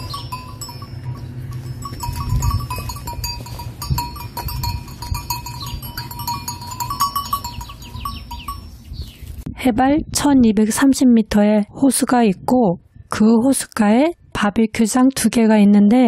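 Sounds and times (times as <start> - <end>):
cow bells clinking: 0.0 - 8.8
low rumble: 0.0 - 10.7.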